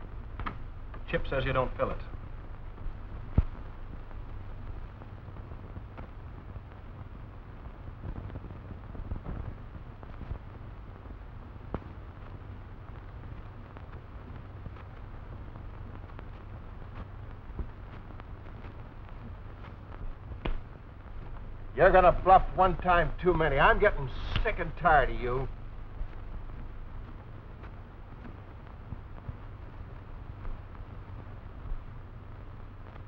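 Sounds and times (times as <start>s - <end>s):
film soundtrack hum and hiss: 0.0s - 33.0s.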